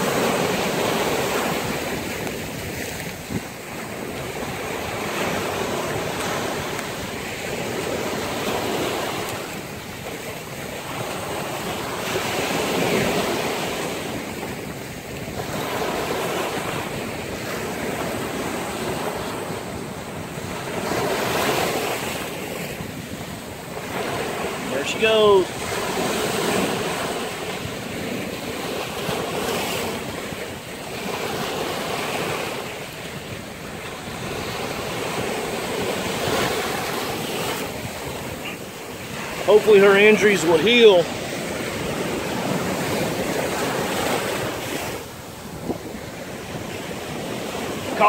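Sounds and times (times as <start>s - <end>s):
surf washing up a beach: 0.0s - 48.0s.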